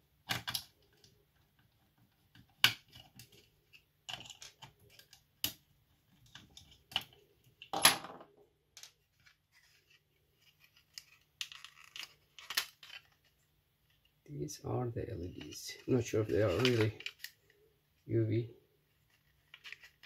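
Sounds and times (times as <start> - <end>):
plastic parts clicking and rubbing: 0.1 - 14.2, 15.3 - 18.0, 18.8 - 20.0.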